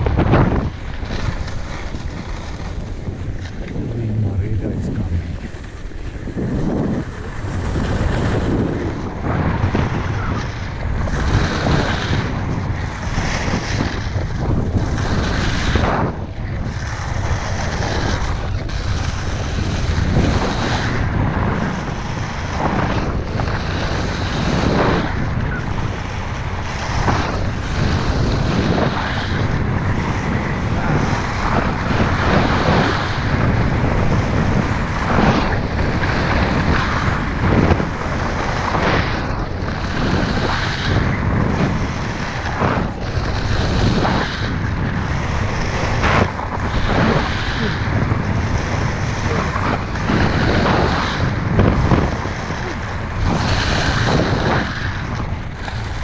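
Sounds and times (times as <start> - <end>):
wind buffeting microphone: 0.0 - 56.0
skis scraping on icy snow: 0.8 - 9.5.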